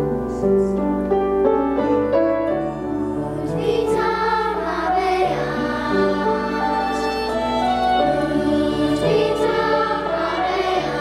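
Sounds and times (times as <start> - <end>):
instrumental accompaniment: 0.0 - 11.0
children's choir singing: 2.4 - 11.0.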